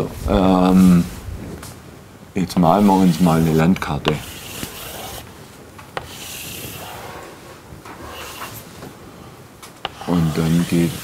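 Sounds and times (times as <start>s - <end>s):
chalk scraping on blackboard: 2.7s - 3.5s, 4.1s - 5.3s, 6.0s - 8.7s, 9.8s - 11.0s.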